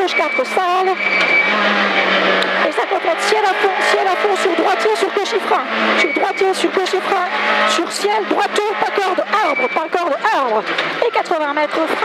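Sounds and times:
rally car engine running hard: 0.0 - 12.0
road noise: 0.0 - 12.0.

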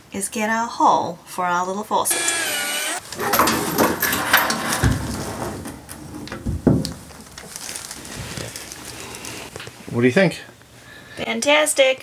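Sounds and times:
rustling: 3.0 - 9.9.

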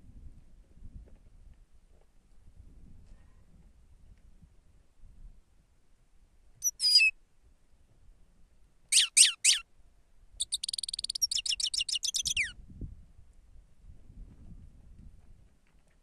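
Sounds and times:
goldfinch singing: 6.6 - 7.1, 9.0 - 9.6, 10.4 - 12.5.

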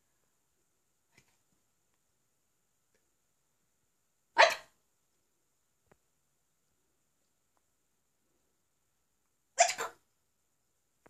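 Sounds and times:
dog barking: 4.3 - 4.8, 9.6 - 10.0.

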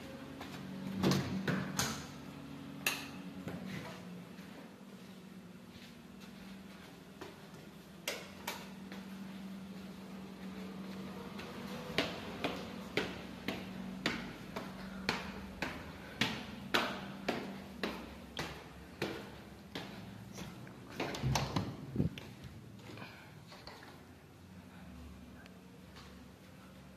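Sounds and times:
footsteps on tiled stairs: 0.0 - 1.8, 3.2 - 24.4
steady low hum: 0.0 - 26.9.

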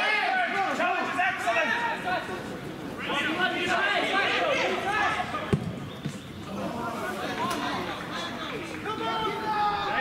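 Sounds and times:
players shouting: 0.0 - 10.0
football being kicked: 5.5 - 6.2.

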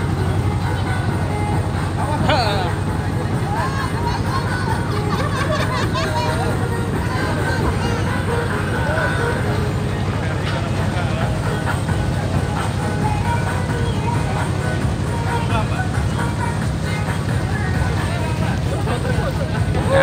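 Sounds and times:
boat engine chugging: 0.0 - 20.0
faint voices: 0.0 - 20.0
music: 0.0 - 20.0.

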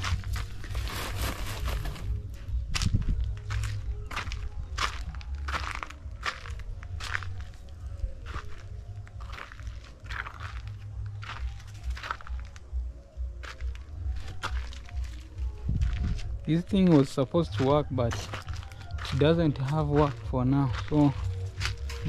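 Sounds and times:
wind rumbling on microphone: 0.0 - 9.4, 14.0 - 16.5
footsteps crunching on dry ground: 0.0 - 22.0.

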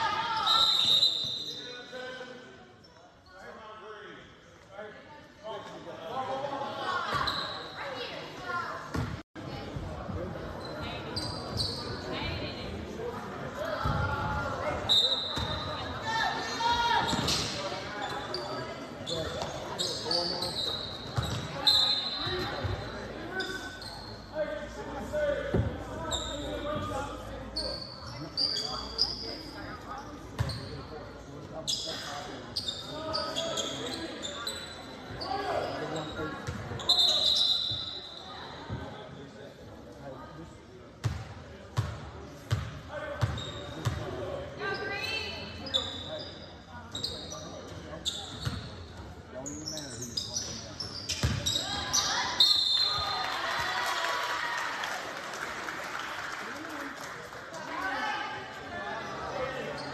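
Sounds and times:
sneakers squeaking: 0.0 - 1.9, 6.9 - 12.4, 13.6 - 24.4, 25.4 - 31.0, 31.6 - 39.0, 41.0 - 53.2, 59.0 - 59.9
voices echoing in a gym: 0.0 - 59.9.

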